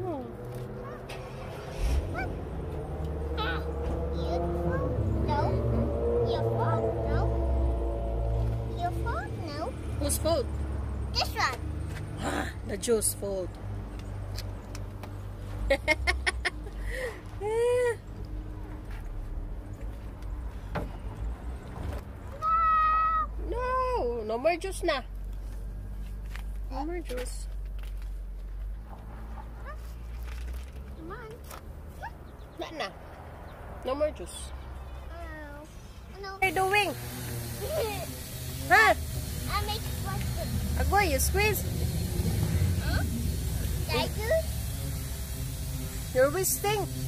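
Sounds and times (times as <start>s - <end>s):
toddler's voice: 0.8s - 1.2s, 3.4s - 7.3s, 35.1s - 36.4s
toddler whining and squealing: 22.3s - 23.4s
woman's voice: 36.4s - 37.0s, 38.6s - 39.0s, 40.8s - 41.6s, 46.2s - 46.9s.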